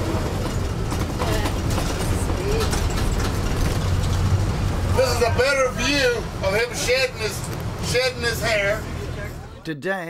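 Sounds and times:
vehicle engine humming: 0.0s - 9.6s.

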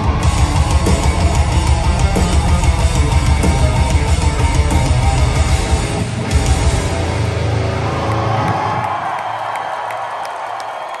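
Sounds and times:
rock band chord ringing: 0.0s - 8.2s
crowd cheering: 0.0s - 11.0s.

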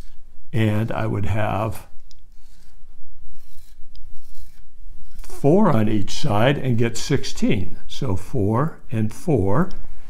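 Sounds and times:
marker rasping on whiteboard: 0.0s - 7.4s.

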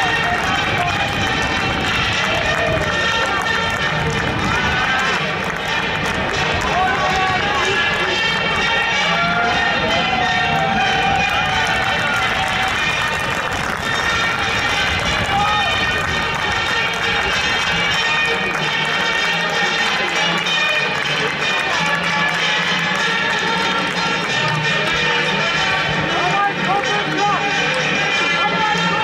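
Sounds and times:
music playing: 0.0s - 29.0s
stadium crowd voices: 0.0s - 29.0s
crowd chanting: 1.8s - 22.4s.

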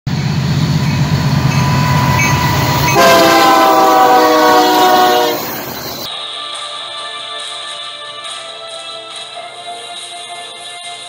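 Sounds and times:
diesel locomotive engine rumble: 0.1s - 6.1s
locomotive air horn chord: 0.1s - 6.1s.

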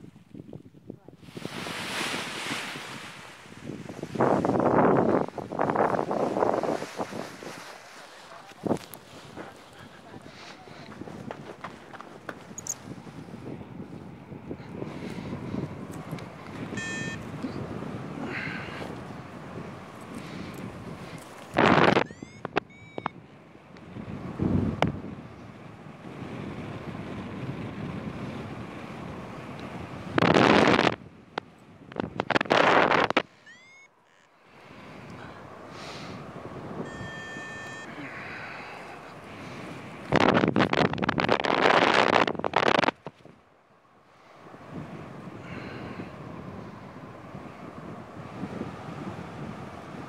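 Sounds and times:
wind buffeting microphone: 0.0s - 33.4s, 34.6s - 43.5s, 44.4s - 50.0s
short tone: 16.7s - 17.6s, 21.9s - 23.2s, 33.3s - 34.3s, 36.8s - 38.2s.

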